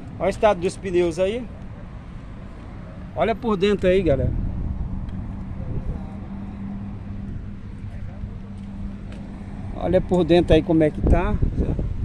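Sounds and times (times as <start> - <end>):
low hum and rumble: 4.1 - 12.0.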